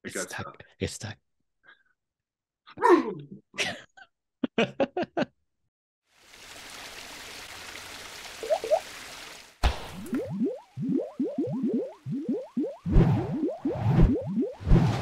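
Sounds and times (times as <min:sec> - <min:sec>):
short rising bloops: 0:08.4 - 0:08.8, 0:09.7 - 0:15.0.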